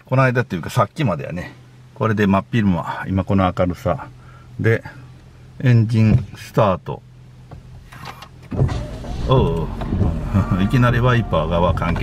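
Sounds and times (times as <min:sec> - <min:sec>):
car engine starting and running: 0:00.0 - 0:12.0
windscreen wipers sweeping: 0:07.4 - 0:12.0.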